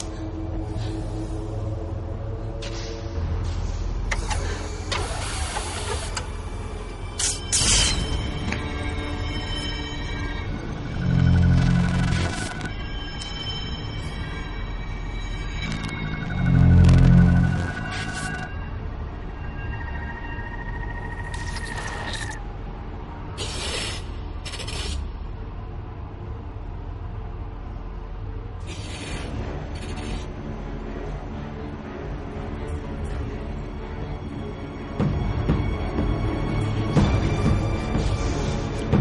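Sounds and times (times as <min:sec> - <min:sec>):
low rumble sound design: 0:13.7 - 0:23.4
gas hissing from nozzle: 0:23.4 - 0:25.0.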